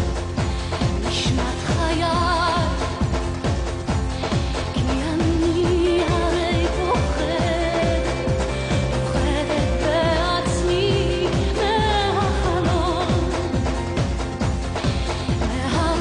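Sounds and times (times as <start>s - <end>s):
steady drum beat: 0.0s - 16.0s
woman singing with vibrato: 0.6s - 3.6s, 4.2s - 14.2s, 15.0s - 16.0s.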